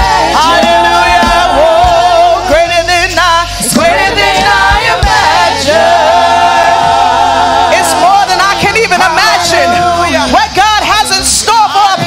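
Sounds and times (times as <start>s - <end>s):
group singing worship song: 0.0s - 12.0s.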